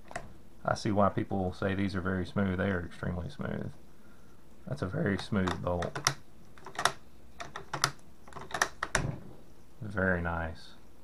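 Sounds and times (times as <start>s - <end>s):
soft thump: 9.0s - 9.4s.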